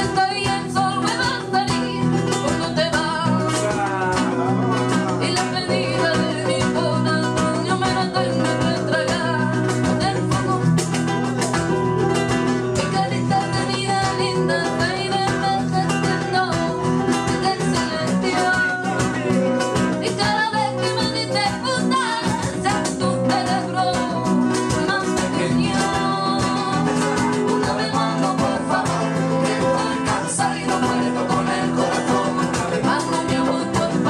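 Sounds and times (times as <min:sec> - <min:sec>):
woman singing: 0:00.0 - 0:03.8, 0:05.0 - 0:11.5, 0:12.6 - 0:34.0
acoustic guitars strumming: 0:00.0 - 0:34.0
hand drumming: 0:00.0 - 0:34.0.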